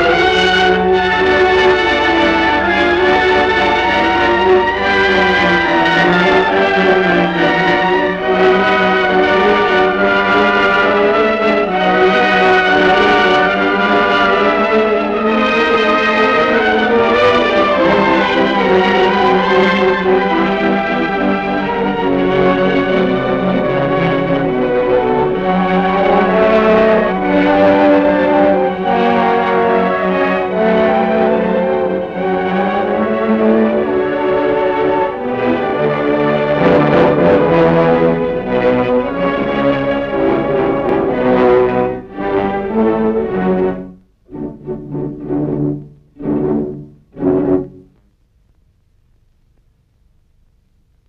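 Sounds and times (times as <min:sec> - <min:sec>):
orchestral brass and strings chords: 0:00.0 - 0:48.0.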